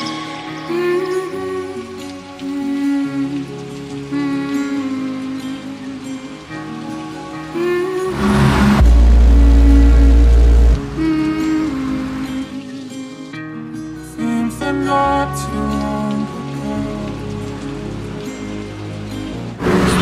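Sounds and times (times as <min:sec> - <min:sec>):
background music: 0:00.0 - 0:20.0
distorted subwoofer bass tone: 0:08.2 - 0:11.0.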